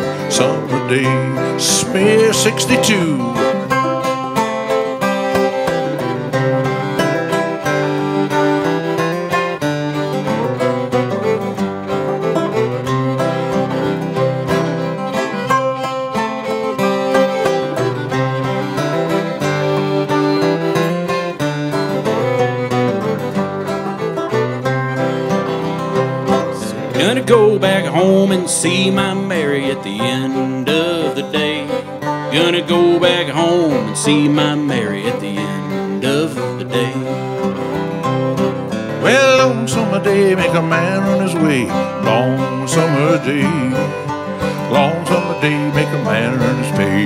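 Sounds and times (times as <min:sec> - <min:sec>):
banjo: 0:00.0 - 0:47.0
fiddle bowing: 0:00.0 - 0:47.0
strummed acoustic guitar: 0:00.0 - 0:47.0.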